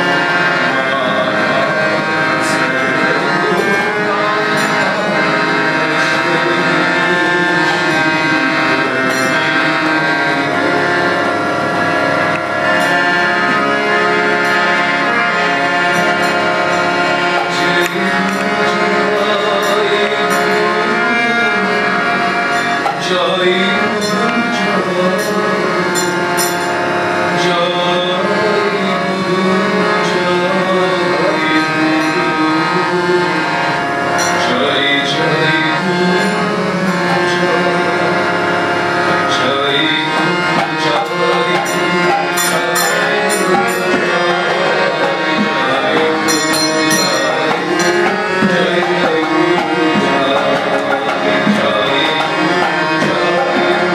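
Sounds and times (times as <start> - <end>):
devotional song: 0.0 - 53.9
harmonium chords: 0.0 - 53.9
man singing long note: 0.6 - 11.8, 39.1 - 53.9.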